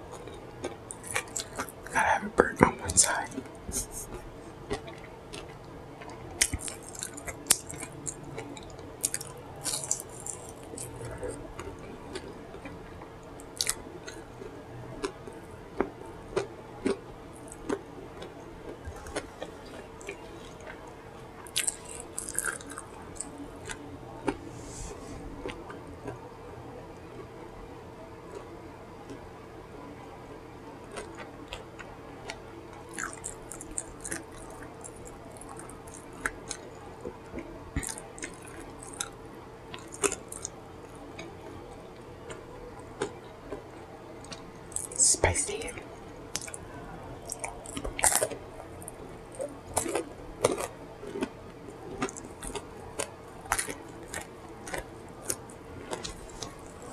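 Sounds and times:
wet chewing and lip smacking: 0:00.0 - 0:26.2, 0:30.9 - 0:56.9
faint steady hum: 0:00.0 - 0:56.9.

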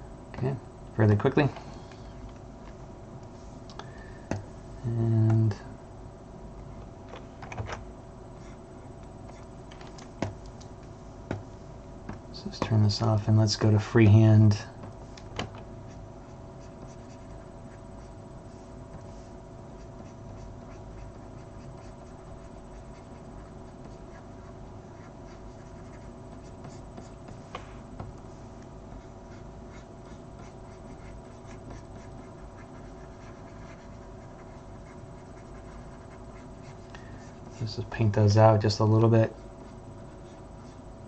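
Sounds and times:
low electrical hum: 0:00.0 - 0:41.0.

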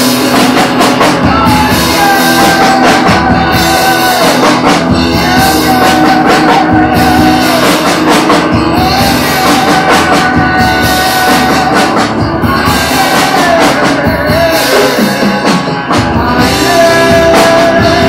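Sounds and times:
drums: 0:00.0 - 0:18.0.

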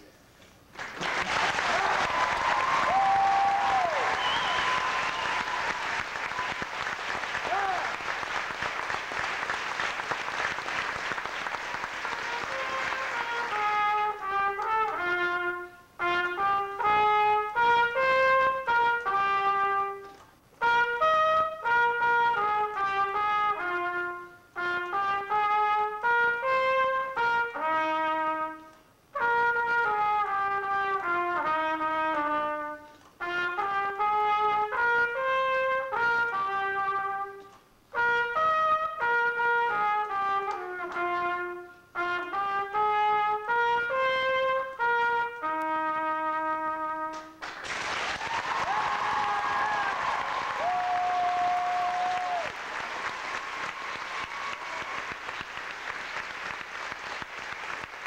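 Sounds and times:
solo trumpet playing fast runs: 0:01.0 - 0:58.0.

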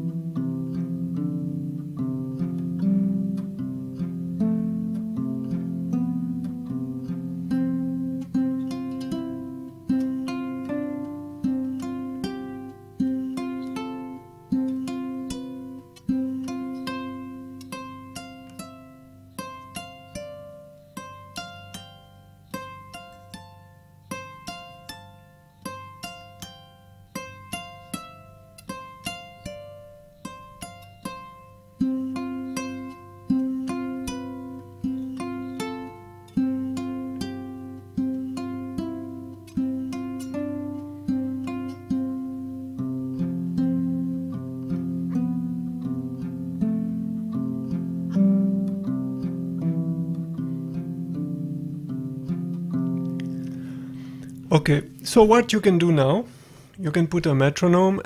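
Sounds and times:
plucked harp-lute: 0:00.0 - 0:58.0.

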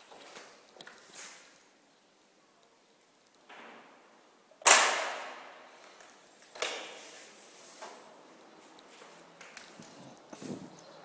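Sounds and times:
soft shuffle: 0:06.9 - 0:10.9.

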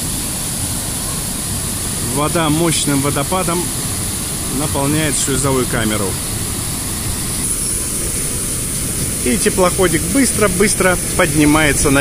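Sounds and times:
water gushing through sluice: 0:00.0 - 0:12.0.

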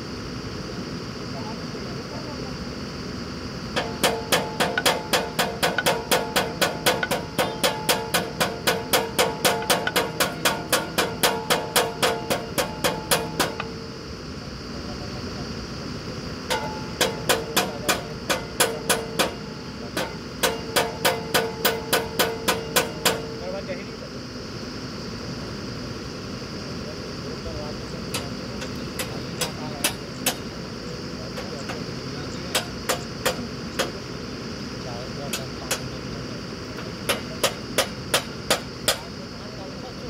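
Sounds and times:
hammer strikes on metal: 0:03.8 - 0:13.7, 0:16.5 - 0:23.4, 0:28.1 - 0:30.5, 0:32.5 - 0:34.0, 0:37.0 - 0:39.1.

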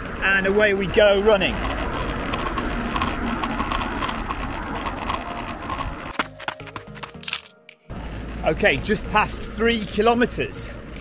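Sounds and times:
wind rumbling on microphone: 0:00.0 - 0:06.2
measuring wheel clatter: 0:00.0 - 0:07.5.

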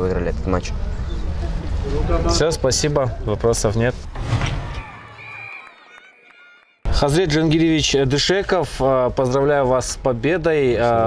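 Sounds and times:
open-air background noise: 0:00.0 - 0:04.2, 0:06.9 - 0:11.0.

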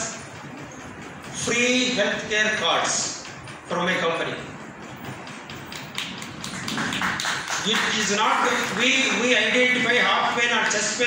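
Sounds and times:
audience clapping: 0:05.3 - 0:10.3.

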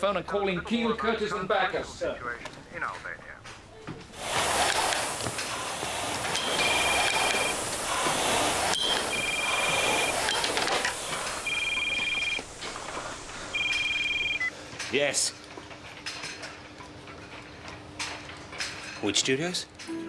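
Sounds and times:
rowing machine flywheel whoosh: 0:04.2 - 0:13.7
mobile phone ringing: 0:06.4 - 0:14.5.

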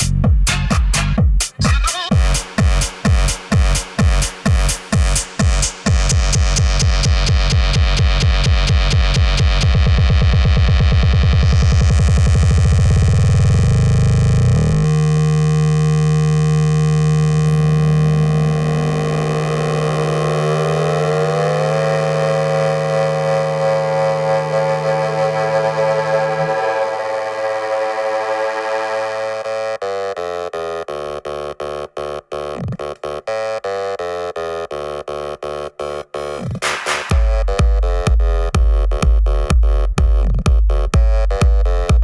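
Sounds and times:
deep bass: 0:00.0 - 0:29.8, 0:37.1 - 0:42.0
electronic dance music: 0:00.5 - 0:09.7, 0:19.8 - 0:29.8, 0:34.4 - 0:42.0
rising synthesizer chord: 0:20.5 - 0:29.9.

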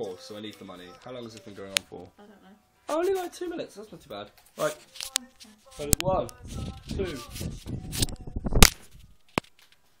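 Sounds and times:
camera handling rustling: 0:04.4 - 0:09.8.

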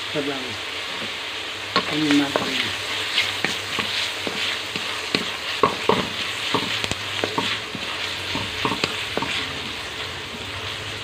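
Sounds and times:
food sizzling in hot fat: 0:00.0 - 0:11.0
wooden spatula scraping pan: 0:02.2 - 0:09.8.

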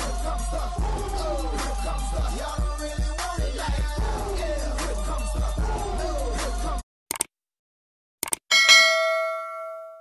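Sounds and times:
bell chime ringing: 0:08.5 - 0:10.0.

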